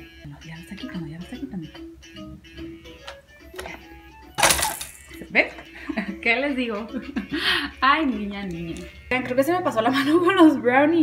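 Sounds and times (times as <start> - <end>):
quiet background music: 0.0 - 11.0
plastic toy rattling clatter: 4.4 - 5.2.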